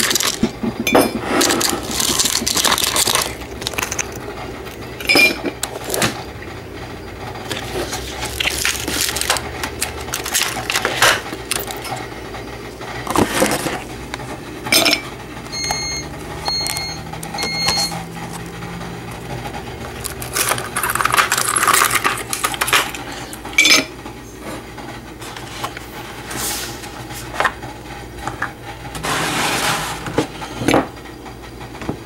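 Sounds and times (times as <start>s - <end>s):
ice cubes cracking from plastic tray: 0.0s - 0.5s, 1.4s - 4.8s, 7.5s - 11.8s, 20.0s - 23.0s
ice cubes clinking into cup: 0.0s - 6.0s, 7.5s - 11.9s, 20.0s - 23.0s
short electronic beeps: 15.6s - 18.0s.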